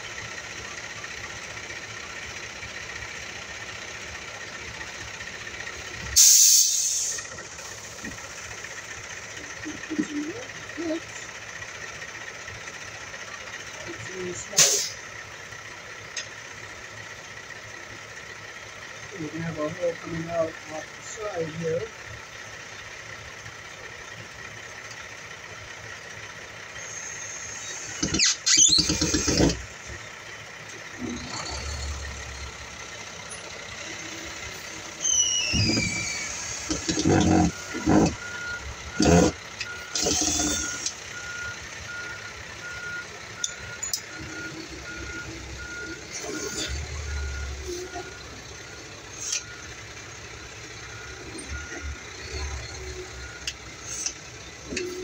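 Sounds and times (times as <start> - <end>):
vehicle reversing beeper: 5.9 - 8.1, 26.7 - 30.0, 30.8 - 55.0
cordless drill driving screws: 27.7 - 29.6, 39.9 - 40.9.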